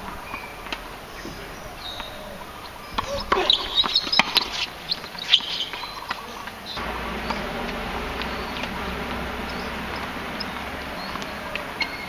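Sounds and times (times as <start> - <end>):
sneaker squeaks: 0.0 - 12.0
tennis ball bounces: 0.0 - 12.0
tennis racket strikes: 2.8 - 6.2
steady low buzz: 6.8 - 12.0.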